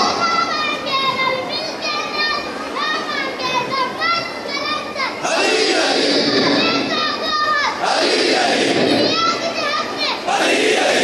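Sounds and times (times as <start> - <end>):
high-pitched voices calling out: 0.0 - 11.0.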